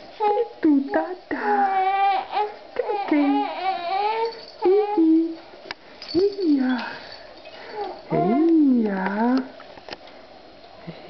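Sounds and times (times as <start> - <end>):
baby cooing: 7.8 - 8.5.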